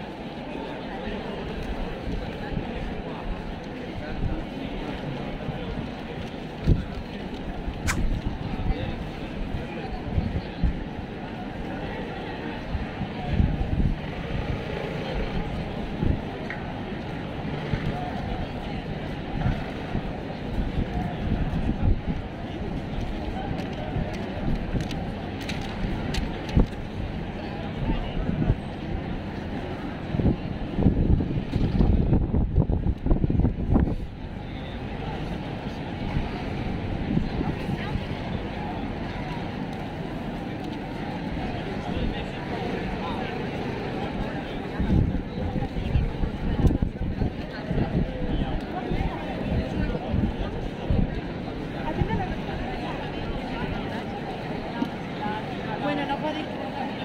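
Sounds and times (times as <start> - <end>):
chatter of passers-by: 0.0 - 57.0
crowd talking and walking: 0.0 - 57.0
low rumbling gusts: 12.6 - 54.5.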